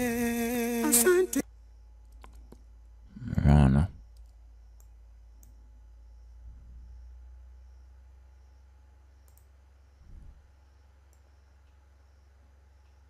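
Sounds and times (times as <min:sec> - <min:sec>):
faint low hum: 0:00.0 - 0:13.0
computer mouse clicking: 0:04.1 - 0:05.6, 0:09.2 - 0:09.5.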